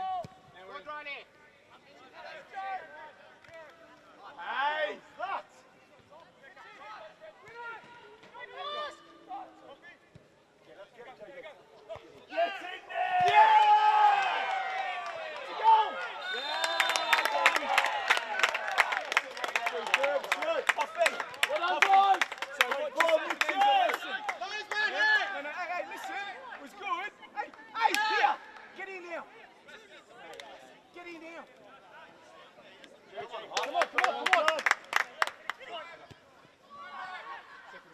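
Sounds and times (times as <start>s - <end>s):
crowd shouting and cheering: 12.3s - 31.4s, 32.5s - 37.9s
hand clapping: 33.5s - 35.6s.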